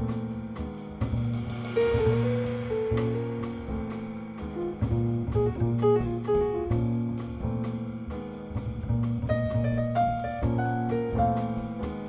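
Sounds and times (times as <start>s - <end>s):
piano: 0.0s - 12.0s
walking upright bass: 0.0s - 12.0s.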